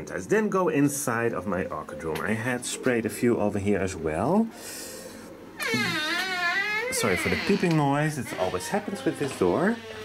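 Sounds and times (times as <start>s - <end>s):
door squeaking open: 5.6s - 10.0s.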